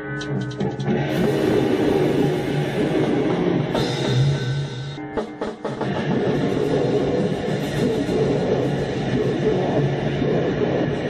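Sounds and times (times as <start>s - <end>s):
distorted electric guitar noise: 0.0s - 11.0s.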